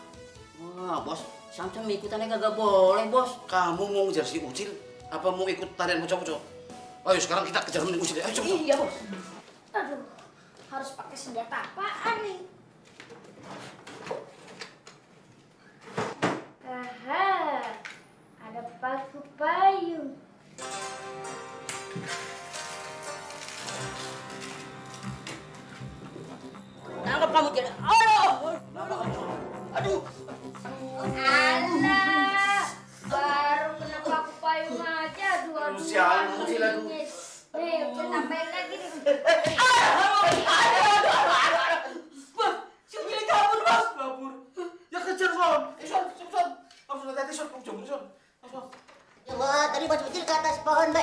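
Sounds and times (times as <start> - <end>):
boy crying and wailing: 30.7 - 32.8.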